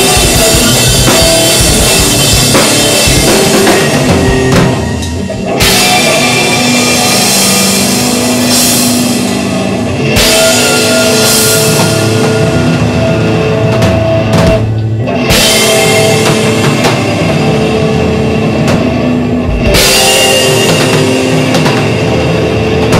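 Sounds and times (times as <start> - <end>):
drum kit: 0.0 - 22.9
rock band playing live: 0.0 - 22.9.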